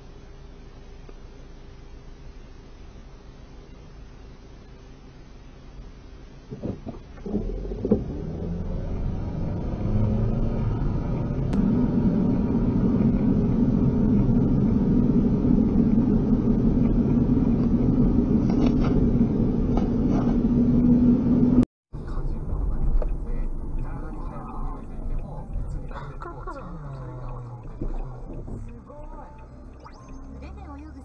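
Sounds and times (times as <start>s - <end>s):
car engine and road noise: 0.0s - 31.0s.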